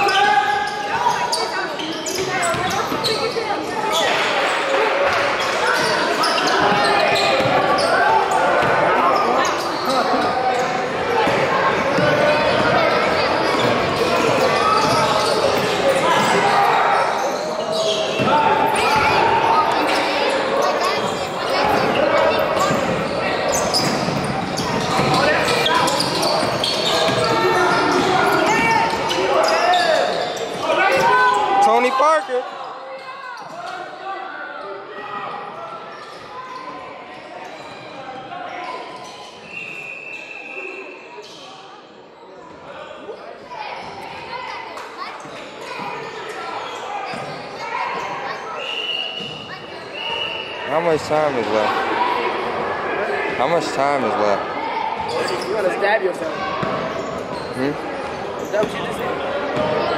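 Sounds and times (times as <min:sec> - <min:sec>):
sneakers squeaking: 0:00.0 - 0:34.0, 0:34.6 - 0:41.8, 0:42.6 - 0:59.9
spectators talking and calling out: 0:00.0 - 0:59.9.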